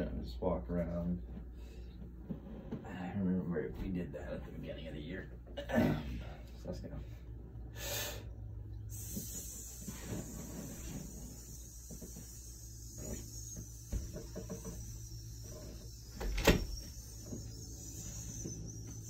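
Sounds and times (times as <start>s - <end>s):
steady low hum: 0.0s - 19.0s
soft footsteps in a room: 0.7s - 5.5s.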